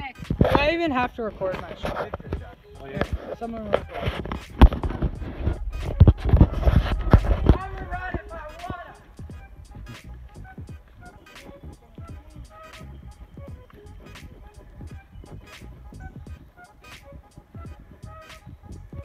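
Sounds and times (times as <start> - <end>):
phone handling rubbing and thumps: 1.4 - 9.2.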